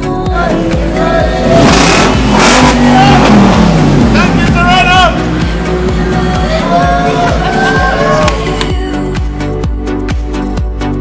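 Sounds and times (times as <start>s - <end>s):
pop music with beat: 0.0s - 11.0s
voices: 0.1s - 9.1s
vehicle engine revving: 0.3s - 8.6s.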